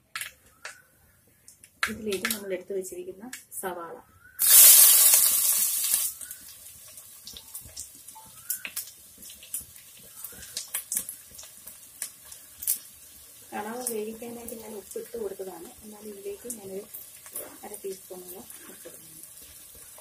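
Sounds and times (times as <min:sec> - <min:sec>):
crackle and spatter of frying: 0:00.0 - 0:20.0
onions sizzling in hot oil: 0:04.4 - 0:20.0.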